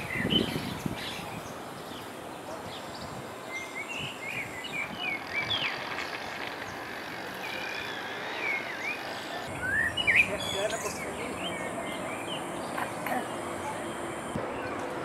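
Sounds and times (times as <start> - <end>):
small birds chirping: 0.0 - 15.0.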